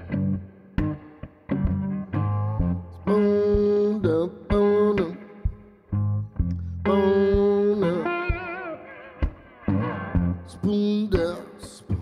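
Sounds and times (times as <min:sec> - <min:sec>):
resonator guitar blues riff: 0:00.0 - 0:12.0.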